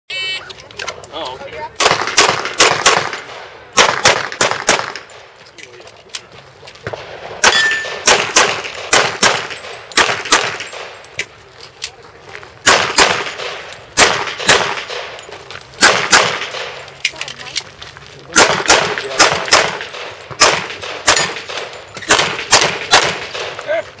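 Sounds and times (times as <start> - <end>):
pistol shots: 1.8 - 5.3, 6.9 - 11.0, 12.6 - 15.2, 15.8 - 16.9, 18.3 - 23.7
steel targets clanging: 7.5 - 8.0.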